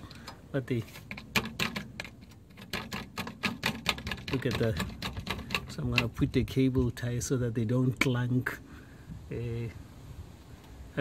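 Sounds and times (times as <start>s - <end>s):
loose car part rattling and clanking: 0.0s - 6.4s.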